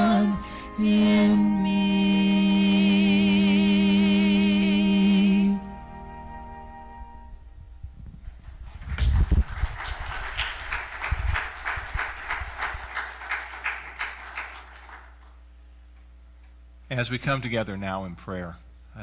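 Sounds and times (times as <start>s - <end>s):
light applause: 8.4s - 15.4s.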